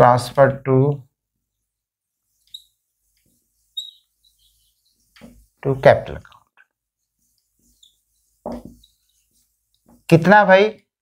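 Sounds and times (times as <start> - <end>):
marker squeaking on whiteboard: 1.4 - 10.2.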